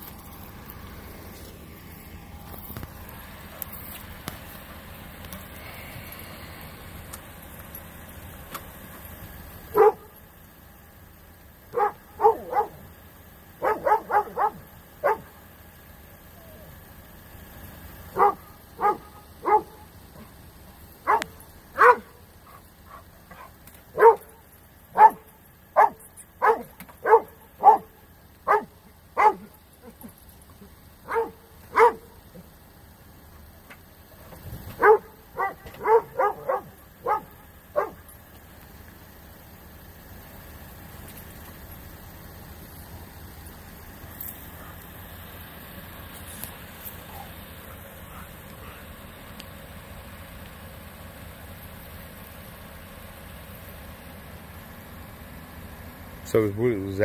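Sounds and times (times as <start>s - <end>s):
dog barking: 9.7s - 10.1s, 11.7s - 12.9s, 13.6s - 15.4s, 18.1s - 20.4s, 21.0s - 30.0s, 31.0s - 32.4s, 34.8s - 38.1s, 44.5s - 44.8s, 47.1s - 48.9s.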